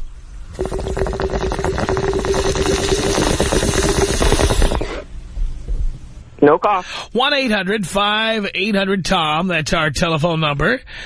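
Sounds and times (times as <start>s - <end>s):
water bubbling through a water pipe: 0.5s - 5.1s.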